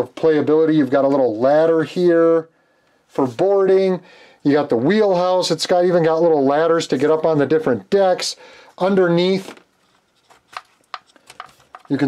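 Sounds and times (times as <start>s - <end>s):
clicks and knocks of wooden parts: 10.2s - 12.0s.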